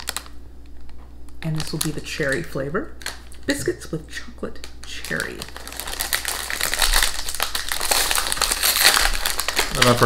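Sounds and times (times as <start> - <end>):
plastic wrapper crinkling: 0.0 - 3.7, 4.5 - 10.0.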